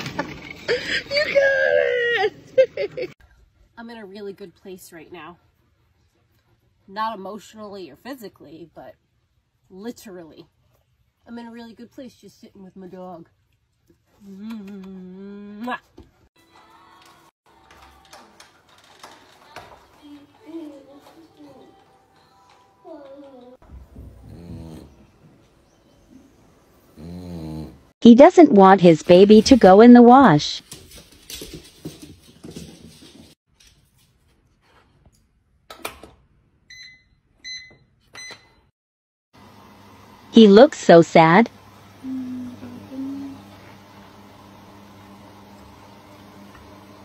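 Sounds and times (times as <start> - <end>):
washing machine panel beeps: 36.7 - 38.6.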